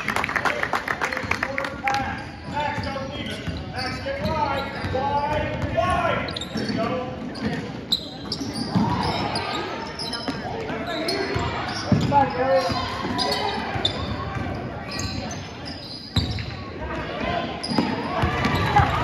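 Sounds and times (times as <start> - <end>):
sneakers squeaking: 1.1 - 19.0.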